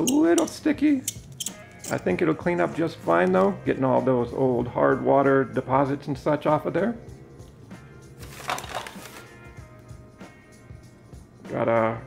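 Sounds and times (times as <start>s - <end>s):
metal razors clicking: 0.0s - 2.1s
quiet background music: 0.0s - 12.0s.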